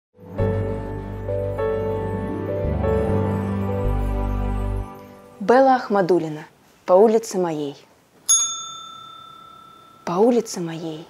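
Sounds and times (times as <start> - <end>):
bell-like chime: 8.3 - 10.4.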